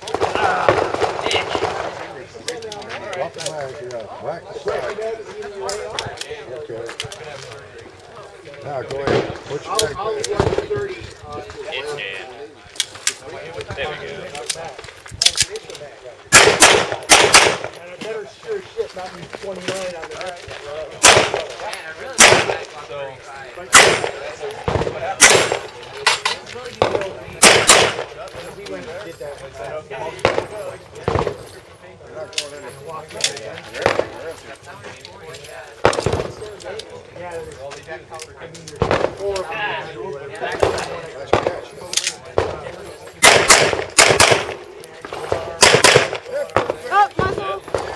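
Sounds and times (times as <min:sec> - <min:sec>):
pistol shots: 0:16.3 - 0:17.8, 0:21.0 - 0:21.6, 0:22.2 - 0:22.8, 0:23.7 - 0:25.8, 0:26.8 - 0:28.1, 0:43.2 - 0:47.9.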